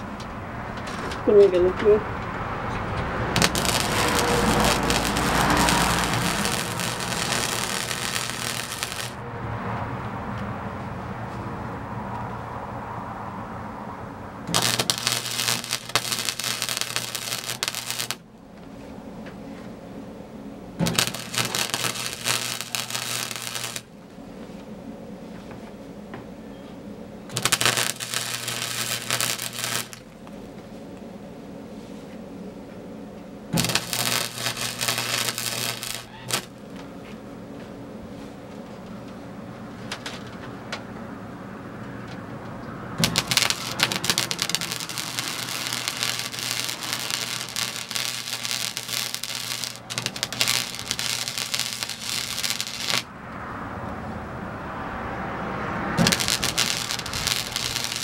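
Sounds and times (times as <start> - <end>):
welder arc crackling: 0.0 - 1.4, 2.8 - 9.2, 14.4 - 18.3, 20.8 - 24.6, 27.3 - 30.7, 33.6 - 36.9, 43.0 - 53.1, 56.0 - 58.0
steady low hum: 0.0 - 54.6.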